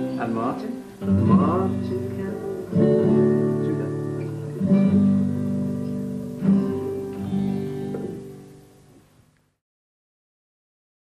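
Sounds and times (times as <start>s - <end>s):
acoustic guitar strumming: 0.0s - 9.1s.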